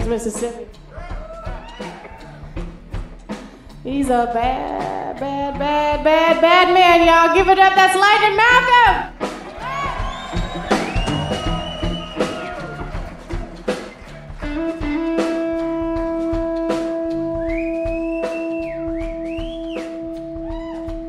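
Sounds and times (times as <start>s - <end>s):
drum kit: 0.0s - 21.0s
electric guitar bending notes: 2.3s - 21.0s.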